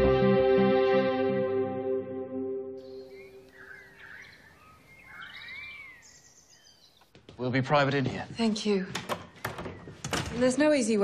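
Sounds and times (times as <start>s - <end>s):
faint outdoor ambience: 2.6s - 11.0s
birds whistling calls: 2.8s - 7.1s.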